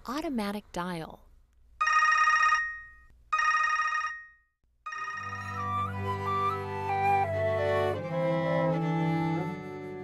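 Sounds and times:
telephone ringing: 1.8 - 5.8.

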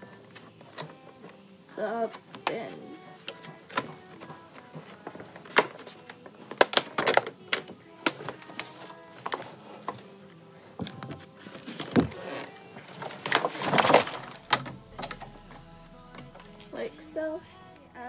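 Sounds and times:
soft background music: 0.0 - 18.0.

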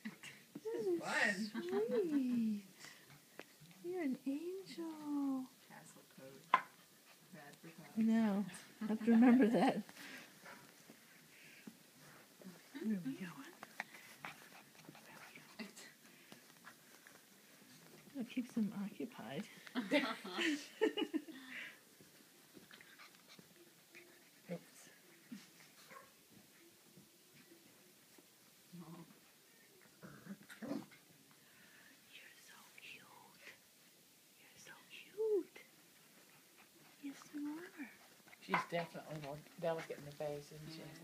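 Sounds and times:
people whispering: 0.6 - 3.0, 12.4 - 14.1, 32.1 - 33.6, 34.4 - 35.7.

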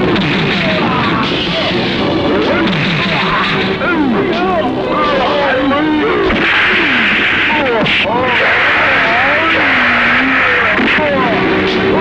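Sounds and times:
men shouting and grunting: 0.6 - 11.3.

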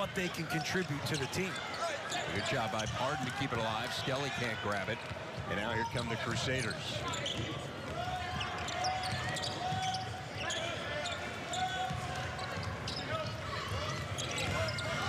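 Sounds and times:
crowd voices: 0.0 - 15.0
sneakers squeaking: 0.3 - 3.6, 4.6 - 15.0.

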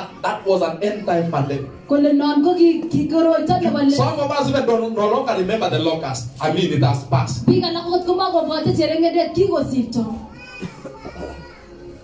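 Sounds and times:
faint children's chatter: 10.0 - 12.0.

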